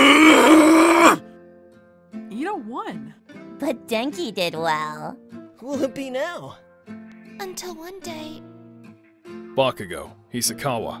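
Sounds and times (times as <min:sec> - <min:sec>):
strained vocal groan: 0:00.0 - 0:01.2
soft background music: 0:00.0 - 0:11.0.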